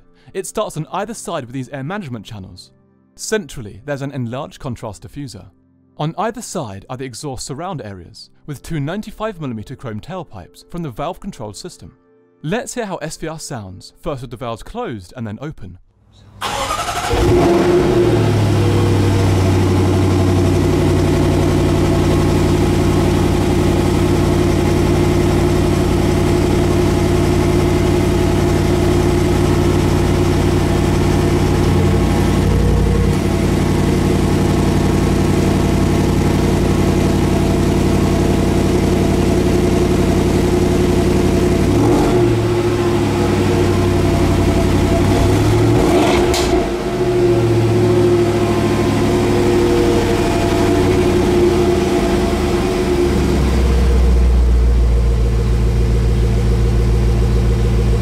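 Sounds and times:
car engine idling: 0:16.4 - 0:58.0
engine revving: 0:16.4 - 0:58.0.

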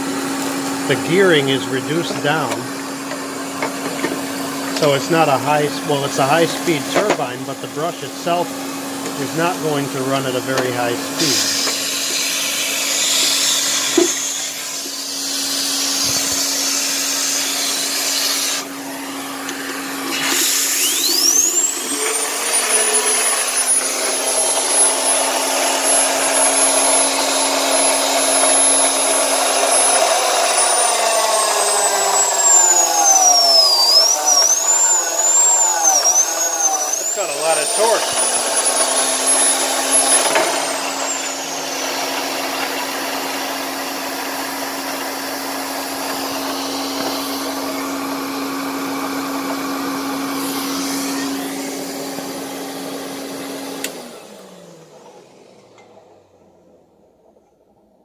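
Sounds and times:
air turbine whine: 0:00.0 - 0:57.2
vacuum cleaner humming: 0:00.0 - 0:57.2.

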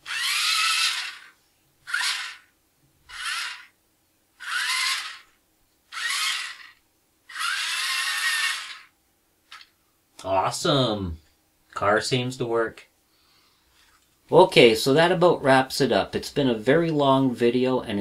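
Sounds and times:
small electric motors whining: 0:00.0 - 0:02.5, 0:03.1 - 0:03.7, 0:04.4 - 0:08.9.

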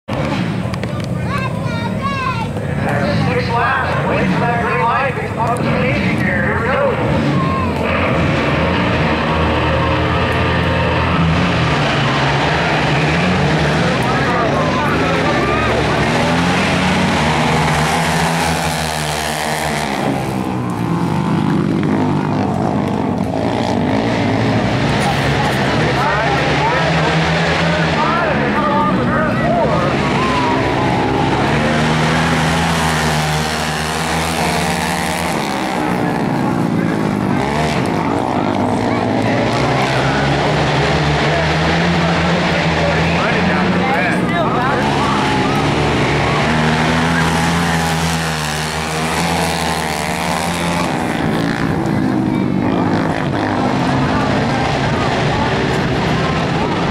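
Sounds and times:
racing quad engines revving: 0:00.1 - 0:56.9.

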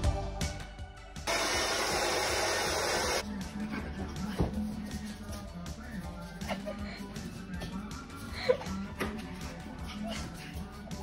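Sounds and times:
hair dryer blowing: 0:01.3 - 0:03.2.

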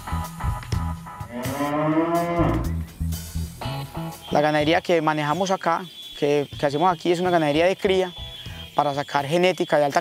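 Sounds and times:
background music with bass and guitar: 0:00.0 - 0:04.9
calf mooing: 0:01.2 - 0:02.8.

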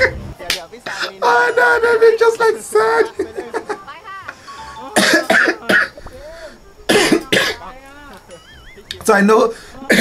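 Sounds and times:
gliding wobbling sound effect tones: 0:00.0 - 0:00.4
music: 0:04.2 - 0:05.9
man coughing: 0:05.0 - 0:06.0, 0:06.9 - 0:07.6.

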